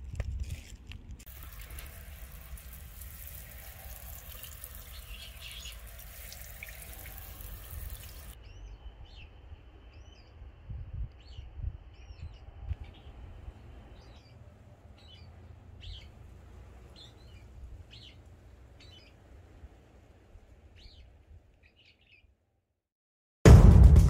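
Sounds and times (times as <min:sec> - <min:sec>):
rushing water hiss: 0:01.3 - 0:08.4
small birds chirping: 0:01.3 - 0:22.4.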